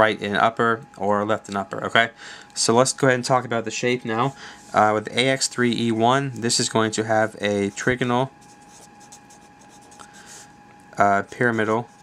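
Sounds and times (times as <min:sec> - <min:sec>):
thin steady tone: 0:00.0 - 0:12.0
marker scratching on paper: 0:07.2 - 0:10.4.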